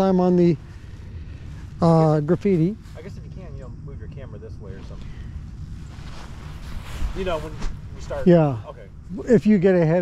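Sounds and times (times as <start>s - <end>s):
faint hiss: 0.0s - 10.0s.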